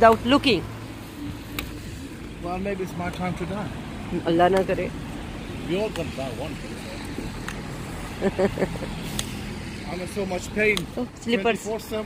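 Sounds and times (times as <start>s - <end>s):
traffic on wet road: 0.0s - 12.0s.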